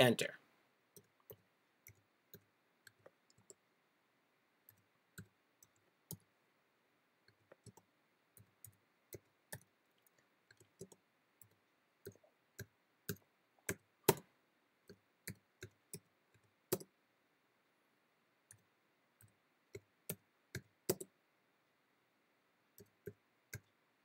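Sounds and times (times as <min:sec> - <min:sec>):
computer keyboard keystrokes: 0:16.7 - 0:16.9, 0:19.8 - 0:21.1.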